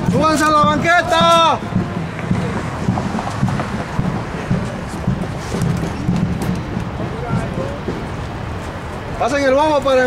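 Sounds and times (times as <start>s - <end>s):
bass drum beating: 0.0s - 8.6s.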